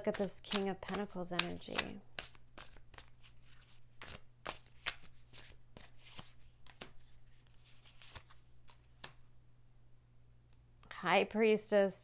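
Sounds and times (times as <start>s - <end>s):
cards being shuffled: 0.1s - 9.2s.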